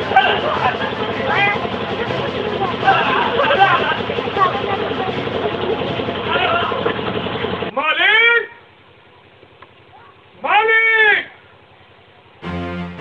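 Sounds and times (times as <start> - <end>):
voices shouting in a scuffle: 0.0 - 8.8.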